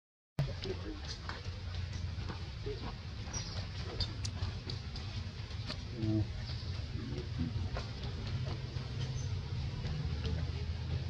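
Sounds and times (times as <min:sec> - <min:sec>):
steady low rumble: 0:00.4 - 0:11.0
faint clicks and ticks: 0:03.3 - 0:05.9.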